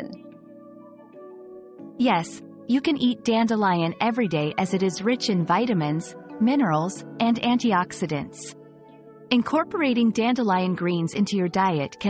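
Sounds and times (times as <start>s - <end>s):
soft ambient music: 0.0s - 12.0s.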